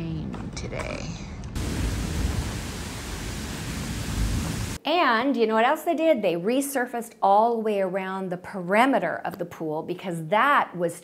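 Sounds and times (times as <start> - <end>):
wind rushing through leaves: 1.6 - 4.8.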